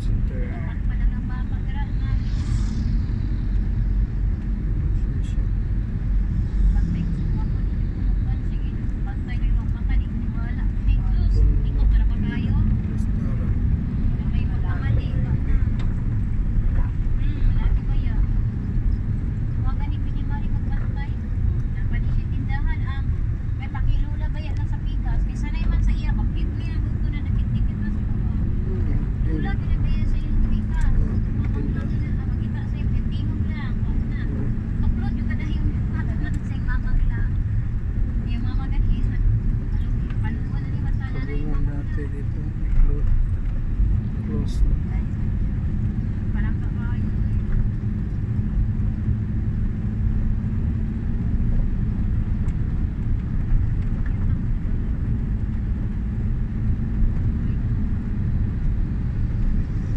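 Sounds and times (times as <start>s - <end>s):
vehicle road and engine rumble: 0.0s - 59.9s.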